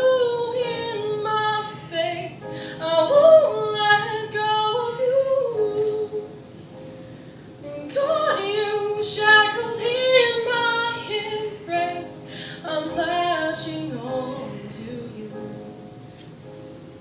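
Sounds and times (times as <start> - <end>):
girl singing into microphone: 0.0 - 6.4, 7.6 - 15.7.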